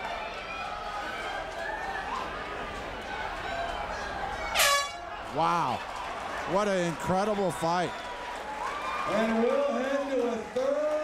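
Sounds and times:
arena crowd voices: 0:00.0 - 0:11.0
air horn blast: 0:04.6 - 0:05.1.

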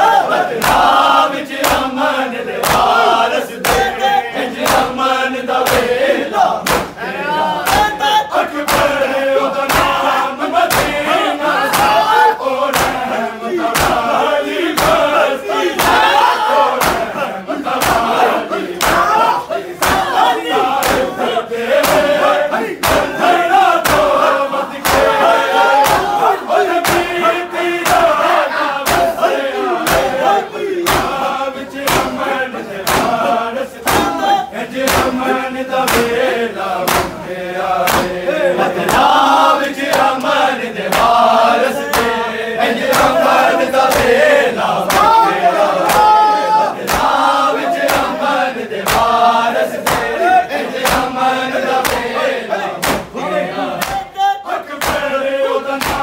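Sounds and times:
men chanting together: 0:00.0 - 0:56.0
palms slapping chests: 0:00.5 - 0:06.0, 0:06.6 - 0:42.2, 0:42.8 - 0:52.2, 0:52.8 - 0:53.2, 0:53.8 - 0:54.2, 0:54.8 - 0:55.2, 0:55.8 - 0:56.0.

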